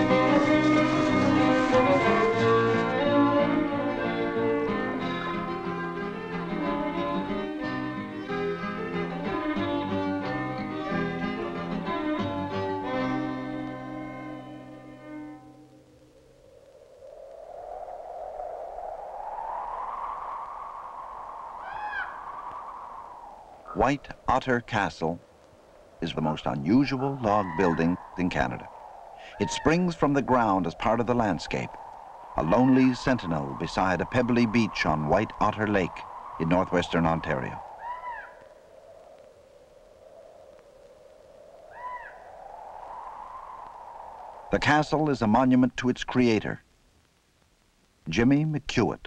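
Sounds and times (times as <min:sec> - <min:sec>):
hollow rushing wind: 0:00.0 - 0:45.8
short bird-like call: 0:21.6 - 0:22.7, 0:37.6 - 0:38.6, 0:41.7 - 0:42.3.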